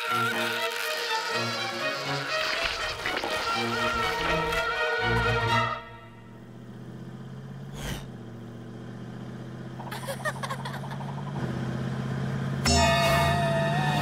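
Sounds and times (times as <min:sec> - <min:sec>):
cartoon car engine humming: 0:00.0 - 0:14.0
high-pitched held tone: 0:12.7 - 0:14.0.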